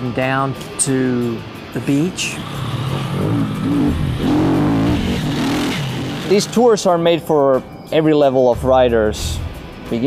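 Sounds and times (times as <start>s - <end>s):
dirt bike engine revving: 2.3s - 6.7s.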